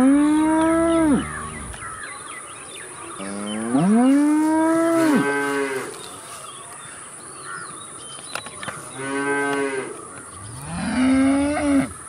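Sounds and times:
cow mooing: 0:00.0 - 0:02.0, 0:09.0 - 0:12.0.

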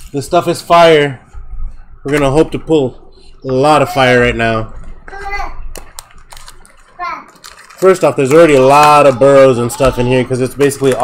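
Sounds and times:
foil packs crackling: 0:05.7 - 0:11.0.

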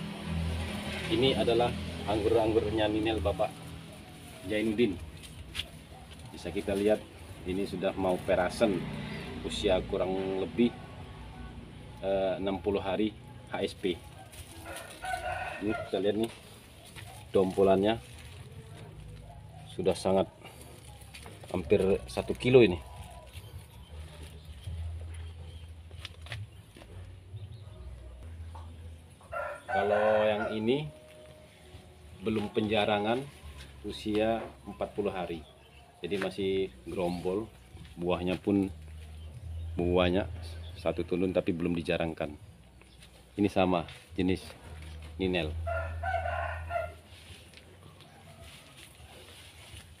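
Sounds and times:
rooster crowing: 0:14.2 - 0:16.4, 0:29.2 - 0:31.4, 0:45.6 - 0:49.4.

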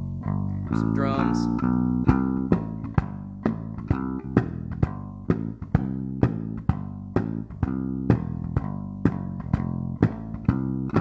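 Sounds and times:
electric bass guitar notes: 0:00.0 - 0:11.0.

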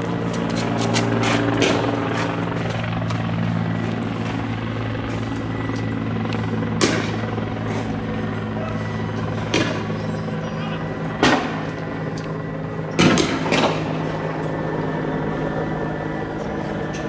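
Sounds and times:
low engine drone: 0:00.0 - 0:17.0.

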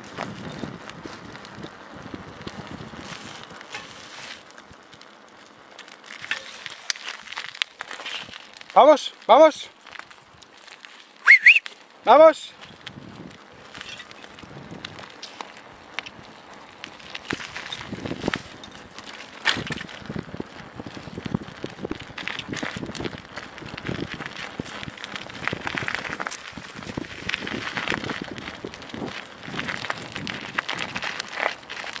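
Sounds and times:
bike rattling: 0:00.0 - 0:32.0
bike tyres crunching on gravel: 0:00.0 - 0:32.0.

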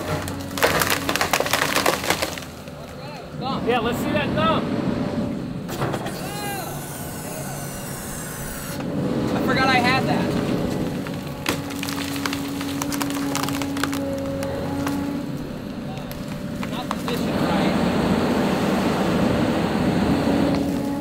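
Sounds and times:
wood cracking and splintering: 0:00.0 - 0:03.1, 0:09.4 - 0:17.5
excavator running: 0:00.0 - 0:21.0
creaking squeals: 0:05.1 - 0:09.0, 0:10.3 - 0:17.2, 0:20.4 - 0:21.0.

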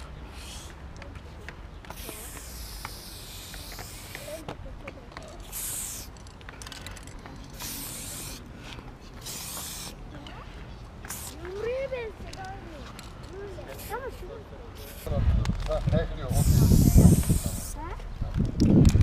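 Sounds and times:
spray paint can hissing: 0:00.0 - 0:00.9, 0:01.8 - 0:04.6, 0:05.2 - 0:10.1, 0:11.0 - 0:11.8, 0:13.6 - 0:14.2, 0:14.8 - 0:15.2, 0:16.3 - 0:18.0.

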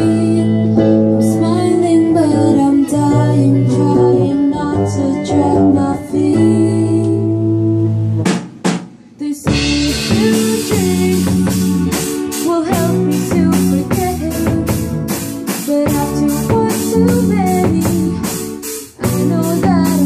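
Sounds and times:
rock band playing: 0:00.0 - 0:06.5, 0:07.5 - 0:20.0
drum hits: 0:08.2 - 0:20.0.

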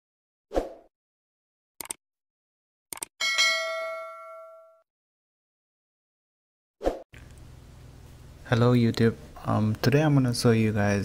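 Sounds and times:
notification bell ding: 0:03.2 - 0:04.8.

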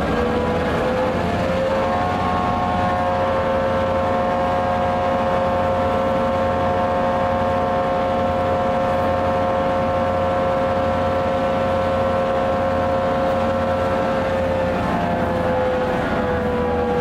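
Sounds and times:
diesel locomotive idling: 0:00.0 - 0:17.0.

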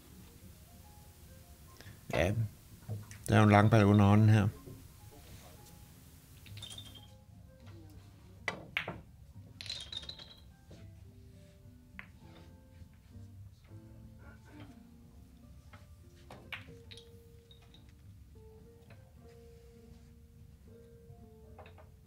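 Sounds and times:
faint background music: 0:00.0 - 0:22.0
billiard balls clicking: 0:06.4 - 0:07.2, 0:08.5 - 0:10.8, 0:15.7 - 0:18.0, 0:21.5 - 0:22.0.

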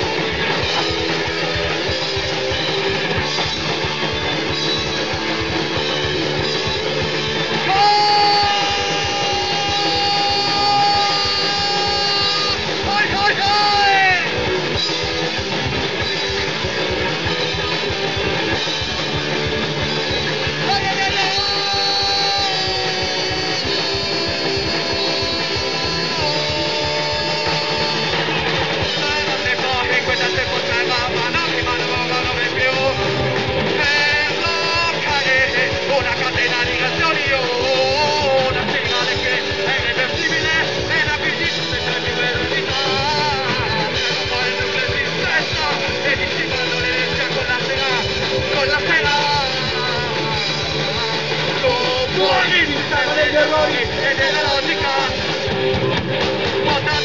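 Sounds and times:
punk band playing live: 0:00.0 - 0:57.0.

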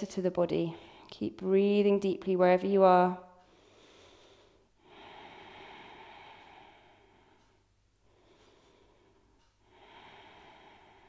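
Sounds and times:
deep breathing through the nose: 0:03.4 - 0:11.0.

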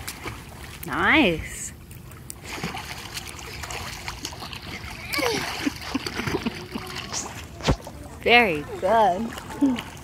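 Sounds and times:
pool water splashing: 0:00.0 - 0:10.0.

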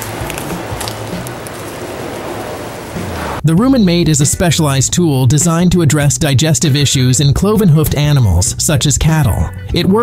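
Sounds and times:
faint background music: 0:03.4 - 0:10.0.

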